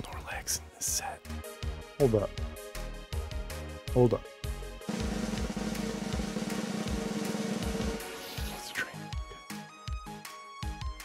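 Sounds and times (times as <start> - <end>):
snare drum roll: 4.9 - 8.6.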